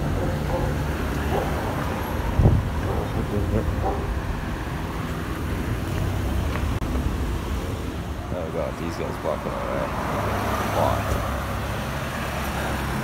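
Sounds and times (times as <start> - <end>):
cars passing on road: 0.0 - 13.0.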